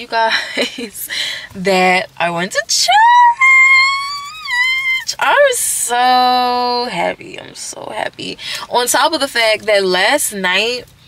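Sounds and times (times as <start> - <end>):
woman squealing: 2.9 - 5.5.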